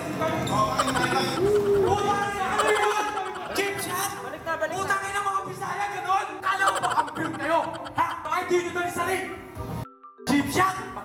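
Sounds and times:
voices calling and shouting: 0.0 - 9.4.

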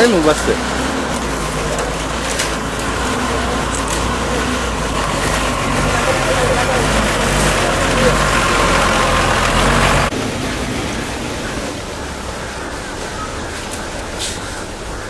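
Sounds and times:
bus diesel engine running: 0.0 - 15.0
voices outdoors: 0.0 - 15.0.

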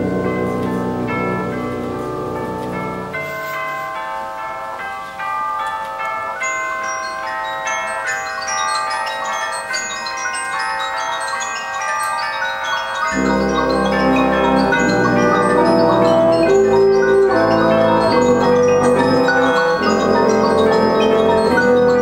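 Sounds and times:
held higher notes: 0.0 - 5.3, 12.7 - 22.0
mallet percussion notes: 0.0 - 22.0.

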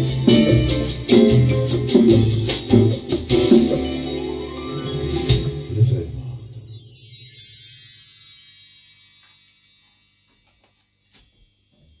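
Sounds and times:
chimes ringing: 6.2 - 12.0.

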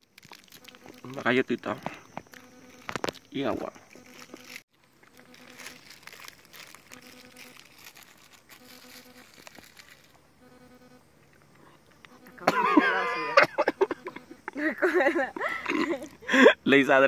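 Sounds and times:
plastic wrapper crinkling: 0.0 - 10.2.

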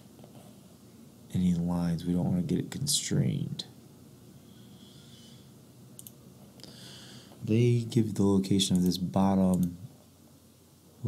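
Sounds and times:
faint room hiss: 0.0 - 11.0.

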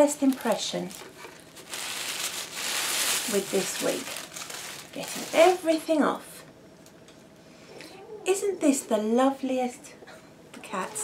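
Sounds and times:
paper packaging rustling: 0.0 - 5.8.

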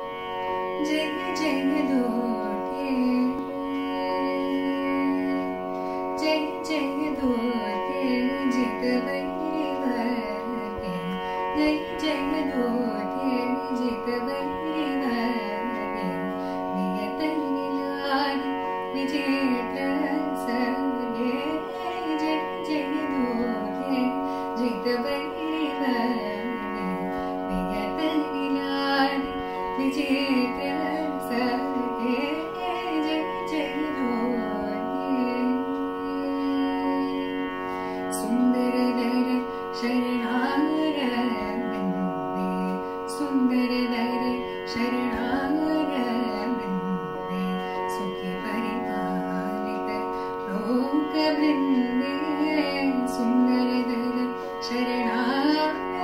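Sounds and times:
woman singing ornamented melody: 0.6 - 56.0.

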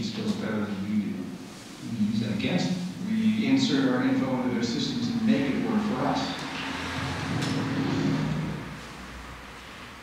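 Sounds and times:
low steady rumble: 0.6 - 10.0.

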